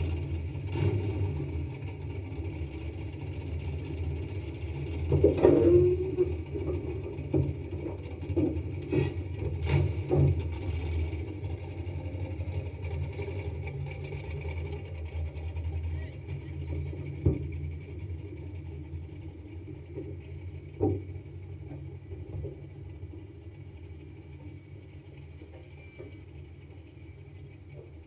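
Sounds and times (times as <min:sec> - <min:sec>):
car engine idling: 0:00.0 - 0:28.0.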